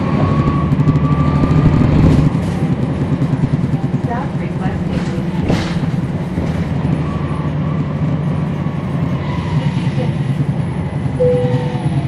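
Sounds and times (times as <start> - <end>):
bus diesel engine rumble: 0.0 - 12.0
brief higher tone: 11.2 - 11.8.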